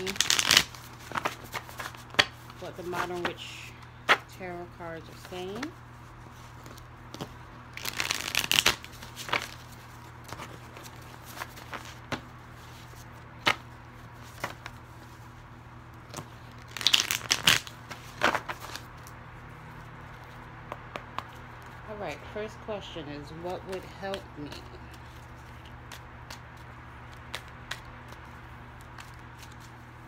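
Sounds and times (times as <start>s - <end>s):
cards riffle shuffling: 0.0s - 3.5s, 5.1s - 15.2s, 16.0s - 19.2s, 23.6s - 29.9s
cards tapping and clicking: 20.6s - 21.7s.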